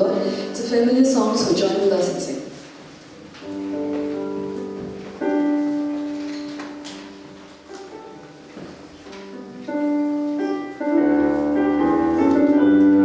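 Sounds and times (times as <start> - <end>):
electric piano playing slow chords: 3.4 - 13.0.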